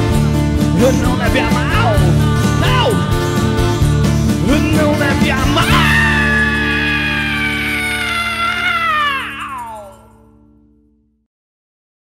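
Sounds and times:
rock band sustained chord: 0:01.6 - 0:10.1.

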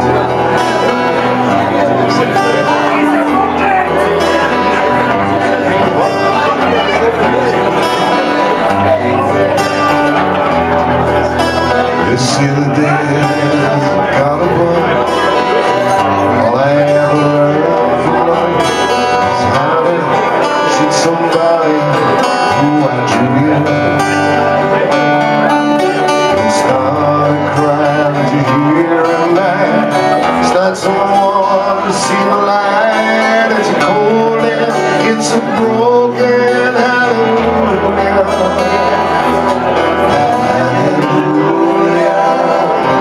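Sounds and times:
acoustic guitars playing: 0:00.0 - 0:43.0
man singing: 0:00.0 - 0:43.0.

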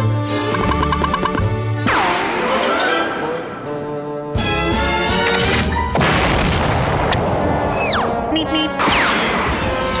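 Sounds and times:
orchestral music: 0:00.0 - 0:06.0.

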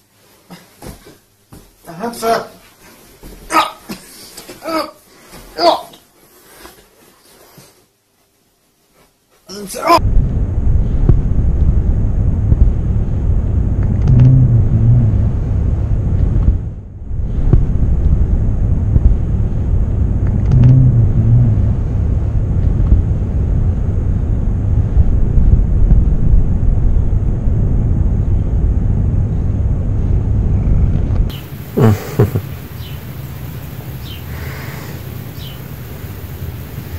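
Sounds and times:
short low-pitched sounds: 0:10.0 - 0:32.5
low rumble: 0:10.0 - 0:36.9.

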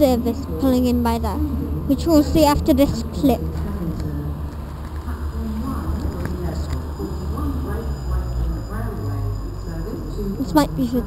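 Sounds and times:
indistinct voices: 0:00.0 - 0:11.0
steady low rumble: 0:00.0 - 0:11.0.

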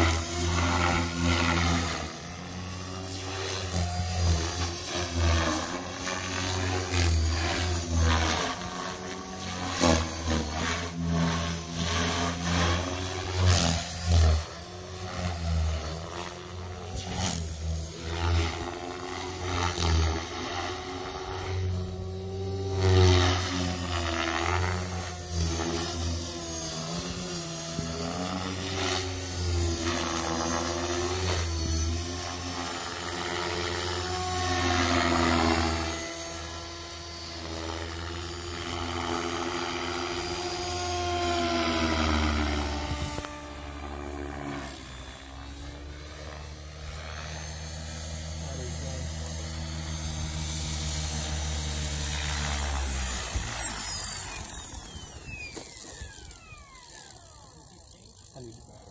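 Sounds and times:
rc helicopter rotor and motor whine: 0:00.0 - 0:58.9.

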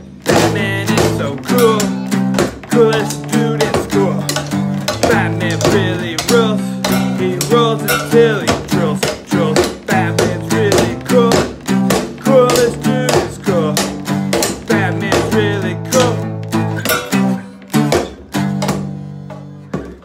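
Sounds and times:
acoustic guitar strumming: 0:00.0 - 0:20.0
man singing: 0:00.2 - 0:18.4.

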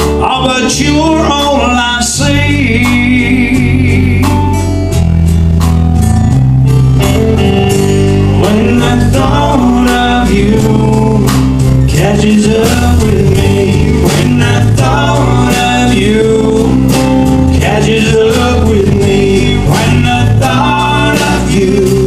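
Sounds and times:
country band playing: 0:00.0 - 0:22.0.

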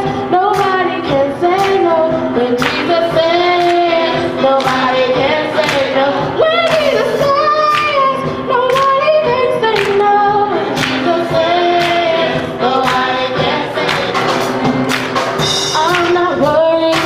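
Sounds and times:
gospel choir singing: 0:00.0 - 0:17.0.

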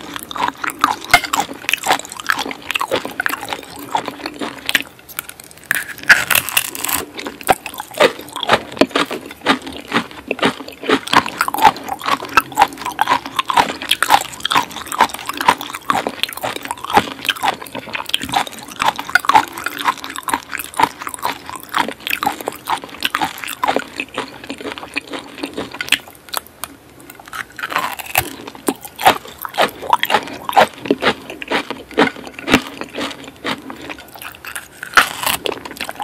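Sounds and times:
close chewing with crunchy bites: 0:00.0 - 0:36.0.

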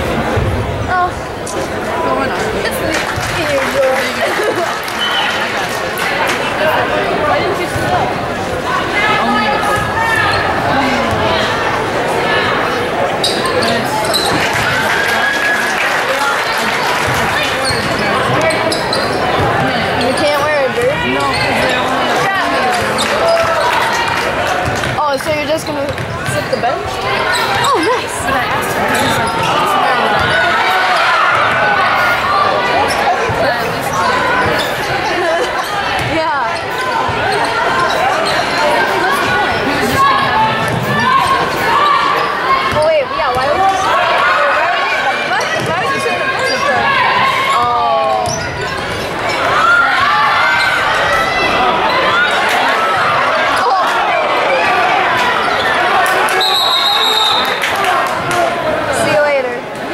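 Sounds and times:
chatter of spectators: 0:00.0 - 0:59.9.

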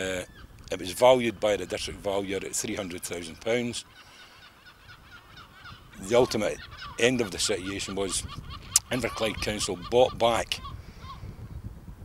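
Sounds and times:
faint bird calls: 0:00.0 - 0:11.4
outdoor background noise: 0:00.0 - 0:12.0.

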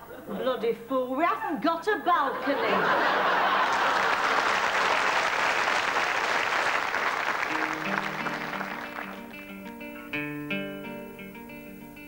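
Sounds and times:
audience applauding: 0:03.1 - 0:10.1
guitar picking single notes: 0:07.5 - 0:12.0.

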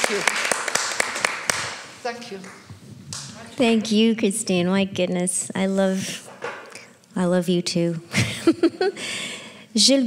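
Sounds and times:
audience applauding: 0:00.0 - 0:02.6.

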